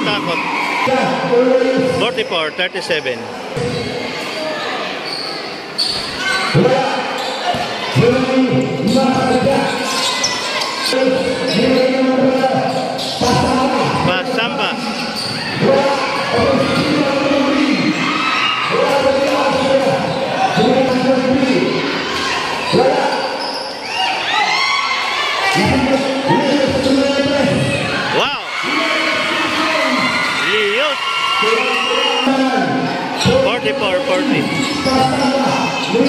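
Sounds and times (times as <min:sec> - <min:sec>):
crowd voices and shouts: 0:00.0 - 0:36.0.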